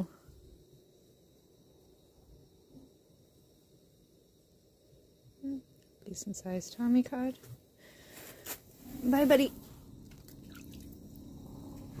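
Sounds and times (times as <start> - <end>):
water drips and splashes: 10.0 - 12.0.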